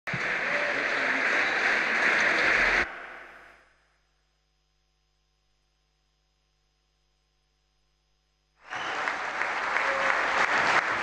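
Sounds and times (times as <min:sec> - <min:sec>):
audience applauding in a hall: 0:00.1 - 0:02.9, 0:08.6 - 0:11.0.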